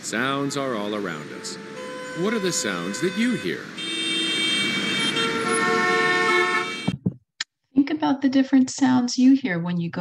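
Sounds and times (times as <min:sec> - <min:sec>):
car and bus engines: 0:00.0 - 0:06.9
vehicle horns: 0:00.0 - 0:07.0.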